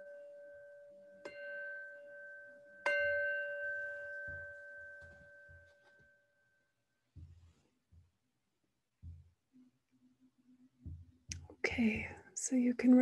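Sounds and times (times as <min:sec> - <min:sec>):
meditation bell ringing: 0:00.0 - 0:06.9.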